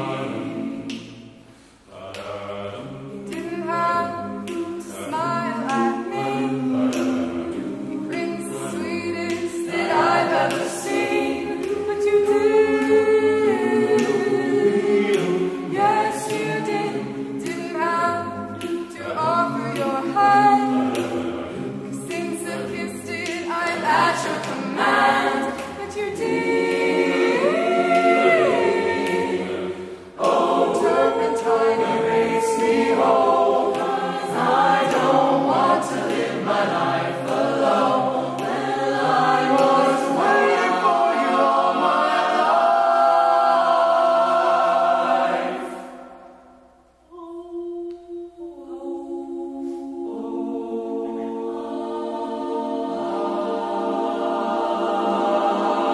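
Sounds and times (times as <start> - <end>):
choir singing a cappella: 0.0 - 55.9.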